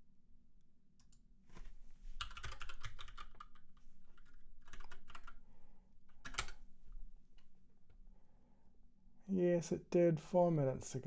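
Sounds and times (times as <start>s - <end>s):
computer keyboard typing: 2.2s - 5.4s, 6.1s - 6.6s.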